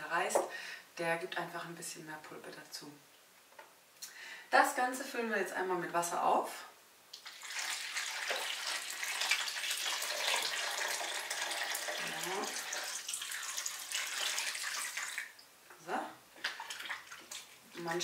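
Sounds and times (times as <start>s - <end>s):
water pouring into a tub: 7.2s - 15.4s, 16.4s - 18.0s.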